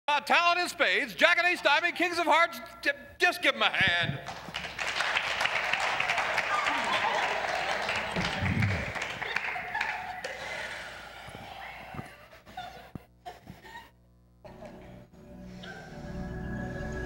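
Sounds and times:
audience applause and cheering: 4.2s - 12.0s.

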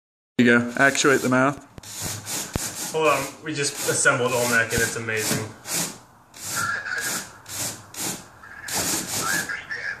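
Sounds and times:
rhythmic foam rubbing scrapes: 0.7s - 9.6s.

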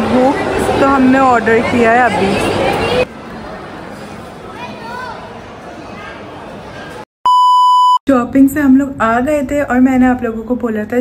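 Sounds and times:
restaurant chatter: 0.0s - 7.0s
steady test-tone beep: 7.3s - 8.0s.

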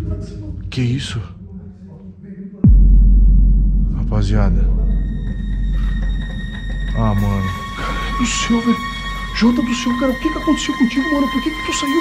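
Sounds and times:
eerie drone music: 2.7s - 12.0s.

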